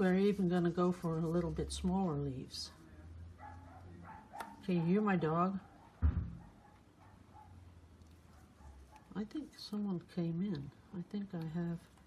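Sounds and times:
dog barking faintly: 3.4 - 7.7, 8.3 - 9.4
dull low thump: 6.0 - 6.5.

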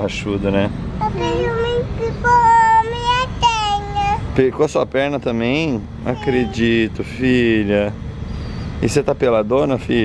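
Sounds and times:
young child singing: 1.0 - 4.3.

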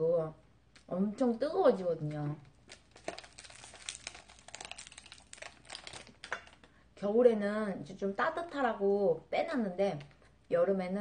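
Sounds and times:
wrapper crinkling: 2.0 - 6.7.

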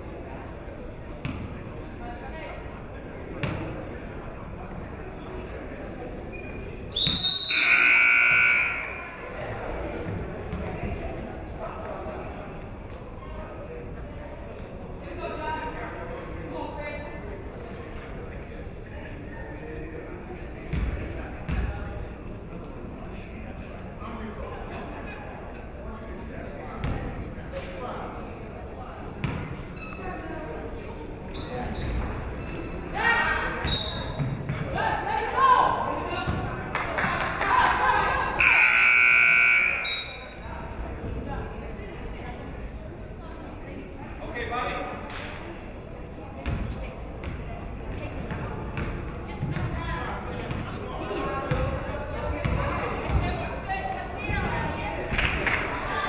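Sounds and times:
hall background noise: 0.0 - 56.0
murmur of voices: 0.0 - 56.0
referee's whistle: 6.9 - 9.1, 33.7 - 34.2, 38.4 - 40.4
voices calling out loudly: 7.0 - 9.3, 38.0 - 40.4
scoreboard horn: 7.5 - 9.1, 38.4 - 39.9.

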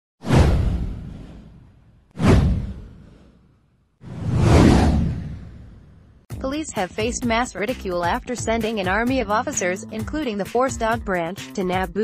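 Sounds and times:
whoosh sweeping down: 4.0 - 6.2.

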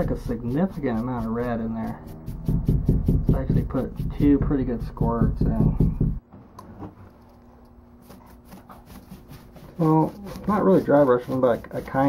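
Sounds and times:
paintbrush tapping and scratching: 0.0 - 6.2, 8.0 - 12.0.

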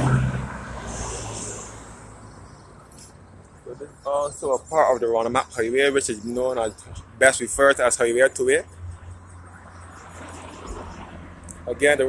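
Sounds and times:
car road noise: 0.0 - 12.0.

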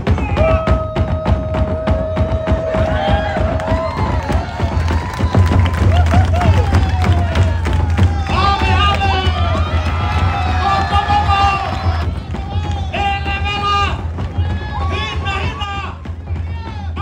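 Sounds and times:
crowd shouting and cheering: 0.0 - 17.0
fast drumming on large drums: 0.0 - 17.0.

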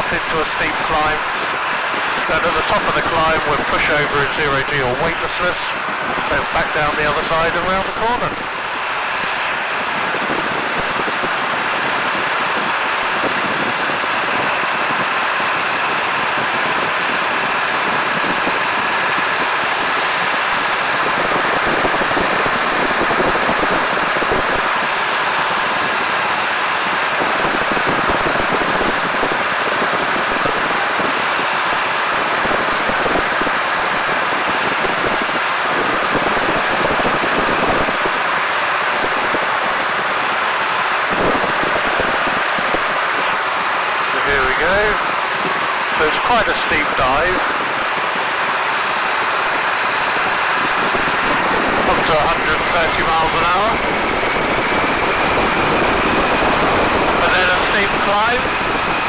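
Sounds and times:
plane engine: 0.0 - 59.0
slipstream wind rushing: 0.0 - 59.0.

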